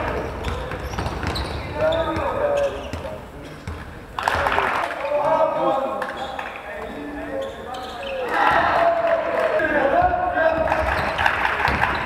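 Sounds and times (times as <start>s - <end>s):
basketball bouncing on floor: 0.0s - 1.4s, 10.0s - 12.0s.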